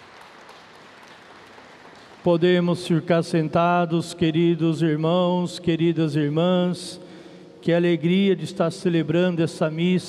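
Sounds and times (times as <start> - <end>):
congregation applauding: 0.0 - 2.8.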